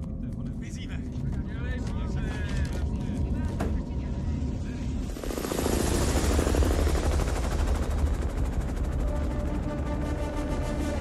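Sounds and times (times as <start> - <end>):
deep steady rumble: 0.0 - 11.0
roaring rush with fluttering: 4.2 - 10.6.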